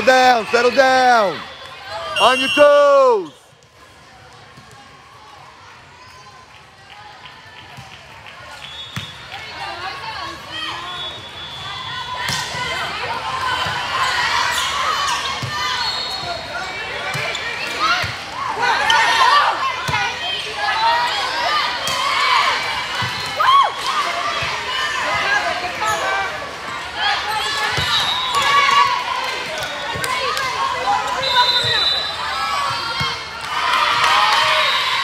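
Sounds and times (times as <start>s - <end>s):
people calling and shouting: 0.0s - 3.5s.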